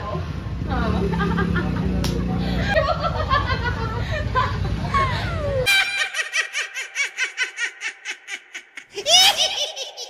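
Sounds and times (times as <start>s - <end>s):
witch cackling: 5.3s - 10.0s.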